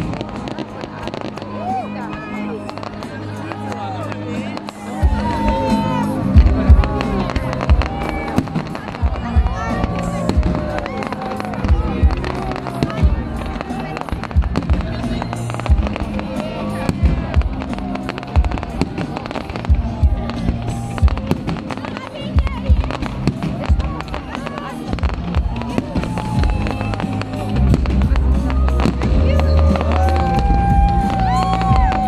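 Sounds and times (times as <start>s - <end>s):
fireworks banging: 0.0s - 32.0s
music: 0.0s - 32.0s
voices: 0.0s - 32.0s.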